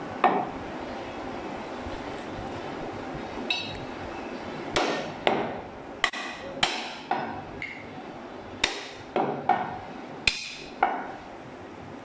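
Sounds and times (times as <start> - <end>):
cleaver chopping meat and bone: 4.8 - 7.4, 8.6 - 11.1.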